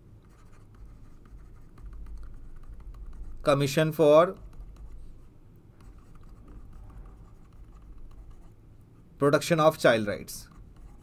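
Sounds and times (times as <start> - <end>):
stylus scratching on pen tablet: 0.3 - 8.6, 9.7 - 11.0.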